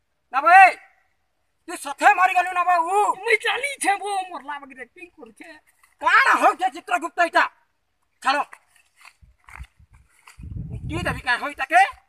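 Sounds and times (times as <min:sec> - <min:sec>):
man talking: 0:01.6 - 0:07.6, 0:08.2 - 0:08.6, 0:10.8 - 0:12.0
wind buffeting microphone: 0:09.1 - 0:12.0.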